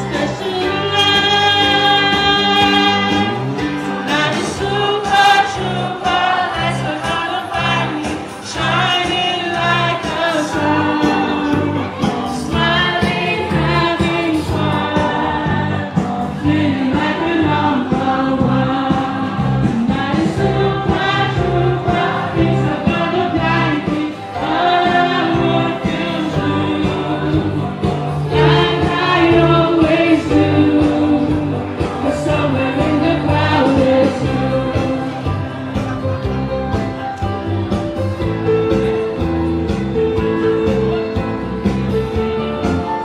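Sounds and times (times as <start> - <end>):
woman singing into microphone: 0.0 - 35.6
amplified backing music with bass: 0.0 - 43.0.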